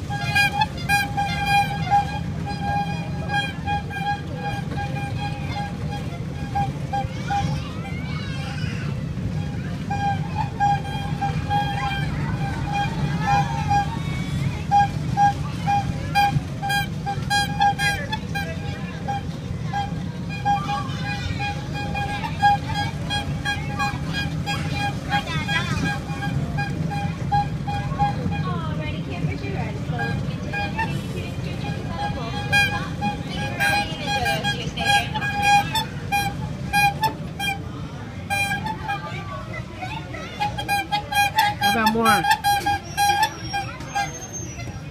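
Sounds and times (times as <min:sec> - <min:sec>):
kiddie truck ride rumbling: 0:00.0 - 0:44.9
people's voices: 0:00.0 - 0:44.9.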